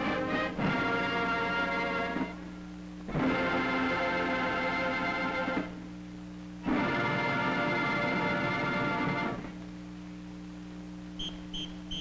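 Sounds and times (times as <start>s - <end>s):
steady low hum: 0.0s - 12.0s
whistle blasts: 11.2s - 12.0s.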